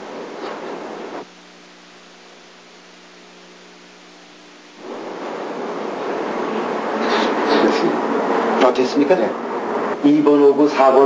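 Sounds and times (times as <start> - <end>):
steady electrical hum: 0.0 - 11.0
tape hiss: 0.0 - 11.0
loud rushing noise: 4.8 - 11.0.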